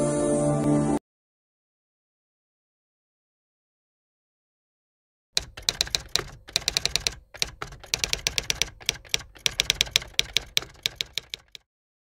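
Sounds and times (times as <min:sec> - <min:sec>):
typewriter keys clacking: 0:05.4 - 0:11.7.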